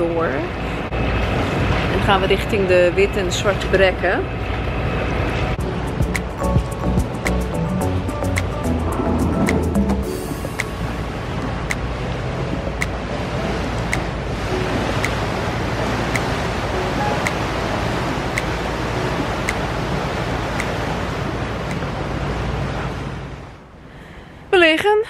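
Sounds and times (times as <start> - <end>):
motorboat engine droning: 0.0 - 23.9
faint ticking: 16.1 - 20.9.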